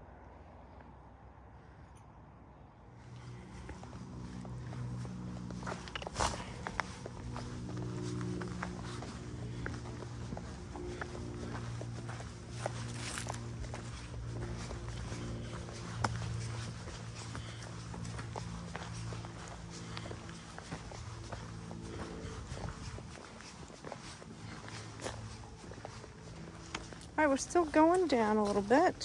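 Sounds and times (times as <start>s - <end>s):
footsteps on rocky trail: 3.0s - 29.0s.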